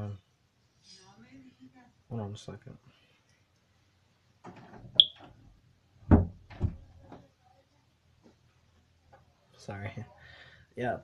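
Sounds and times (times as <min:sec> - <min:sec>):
heavy thumps: 0:06.1 - 0:06.9.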